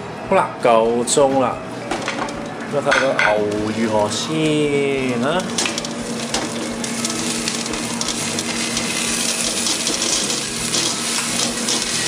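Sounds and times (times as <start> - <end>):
steak sizzling and crackling: 5.0 - 12.0.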